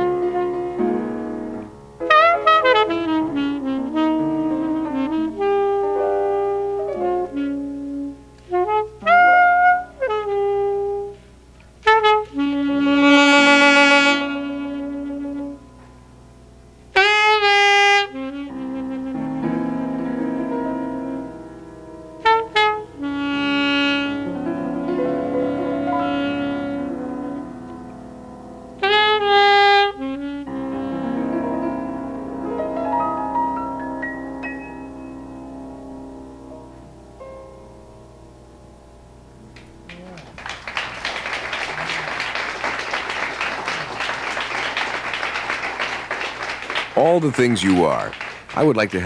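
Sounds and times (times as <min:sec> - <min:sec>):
piano chords: 0:00.0 - 0:11.1, 0:11.8 - 0:49.0
alto saxophone jazz phrases: 0:00.0 - 0:15.9, 0:16.9 - 0:21.5, 0:22.1 - 0:33.8, 0:41.1 - 0:49.0.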